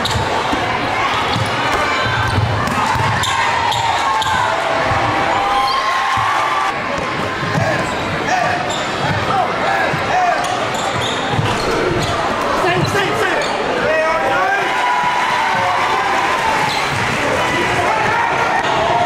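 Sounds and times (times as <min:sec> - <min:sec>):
players and spectators voices: 0:00.0 - 0:19.0.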